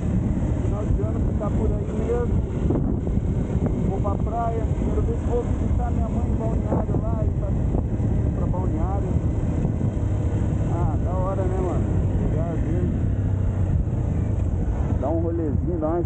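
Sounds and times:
dirt bike engine running: 0.0 - 16.0.

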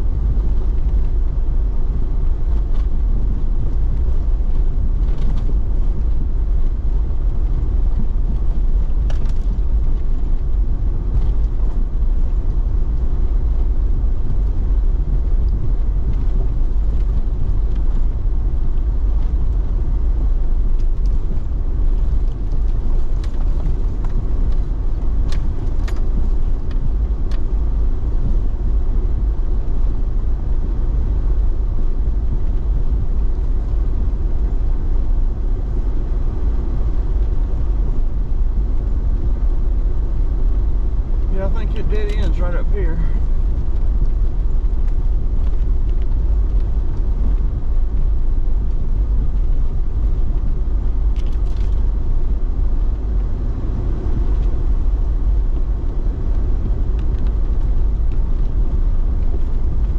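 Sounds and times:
engine and tyres rumbling: 0.0 - 59.9.

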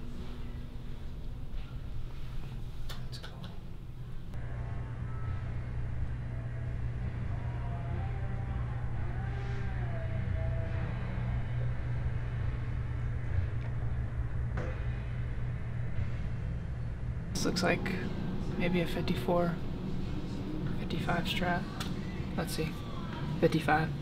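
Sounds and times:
low rumble: 3.8 - 23.4.

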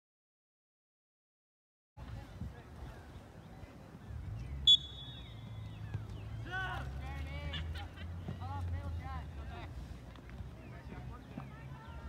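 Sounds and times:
referee whistle blast: 4.6 - 5.3.

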